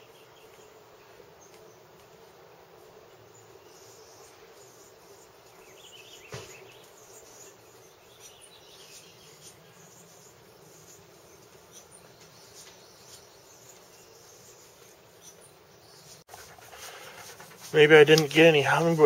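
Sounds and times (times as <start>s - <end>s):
insects buzzing: 0.0s - 19.0s.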